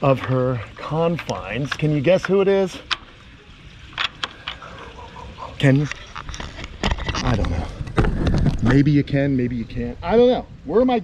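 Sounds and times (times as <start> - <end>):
wind rumble on microphone: 6.2 - 10.8.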